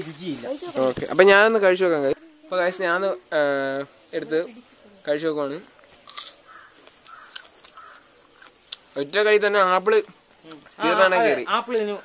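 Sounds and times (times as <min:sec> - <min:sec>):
faint bird calling: 0:06.3 - 0:08.7.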